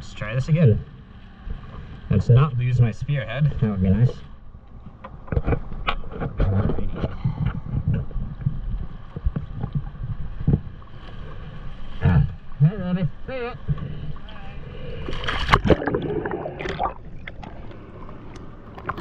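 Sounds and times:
water lapping against boat: 0:00.2 - 0:19.0
man speaking: 0:12.0 - 0:14.6.

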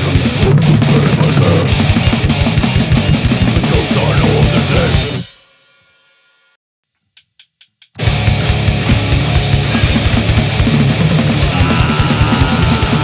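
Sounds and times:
band playing fast heavy riff: 0:00.0 - 0:05.3, 0:08.0 - 0:13.0.

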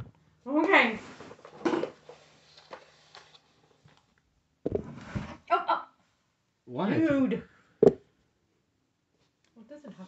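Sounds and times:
thump: 0:04.6 - 0:05.4, 0:07.8 - 0:08.0.

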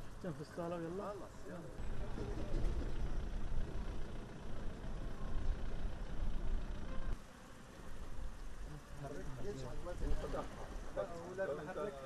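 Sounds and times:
heavy vehicle engine rumble: 0:00.0 - 0:07.2
open-air road ambience: 0:00.0 - 0:12.0.

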